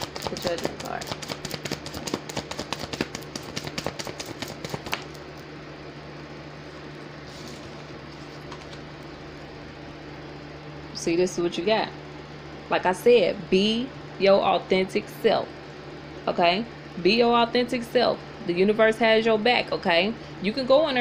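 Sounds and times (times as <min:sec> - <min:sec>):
cards shuffling clicks: 0:00.0 - 0:05.4, 0:07.4 - 0:08.9
steady low hum: 0:00.0 - 0:21.0.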